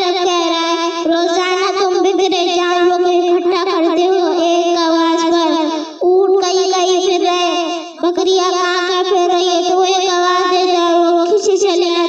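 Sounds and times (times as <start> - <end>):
boy chanting: 0.0 - 12.0.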